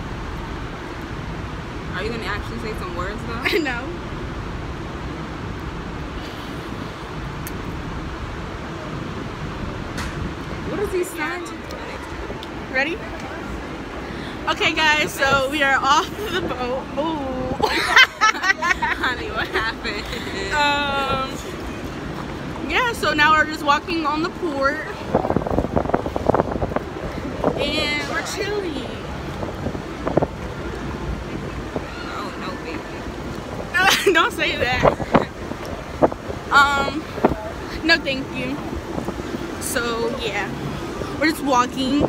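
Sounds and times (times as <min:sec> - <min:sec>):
low rumbling background noise: 0:00.0 - 0:42.0
wind buffeting microphone: 0:00.0 - 0:42.0.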